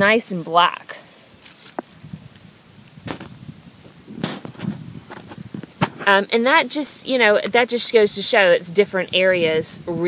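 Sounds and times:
hand rummaging through mulch: 1.0 - 6.2.

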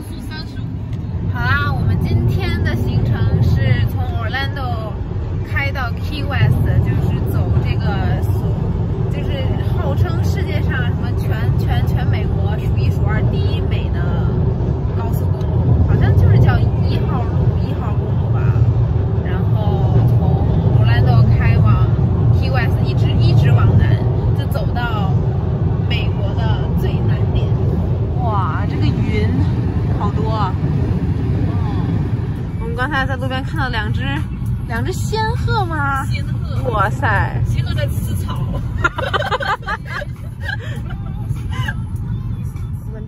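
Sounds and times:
road and engine noise in car: 0.0 - 43.0
women talking: 1.3 - 8.4, 9.1 - 25.2, 25.8 - 30.7, 31.4 - 41.8.

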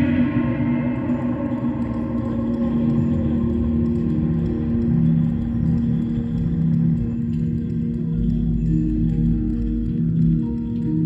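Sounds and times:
deep rumble: 0.0 - 10.2
slow ambient music: 0.0 - 11.0.

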